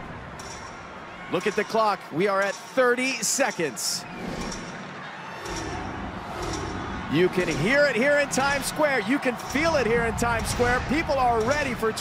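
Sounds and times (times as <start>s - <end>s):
crowd of many voices: 0.0s - 12.0s.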